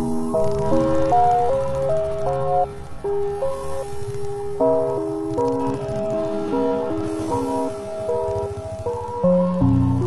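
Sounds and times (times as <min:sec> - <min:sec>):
instrumental chillout music: 0:00.0 - 0:10.0.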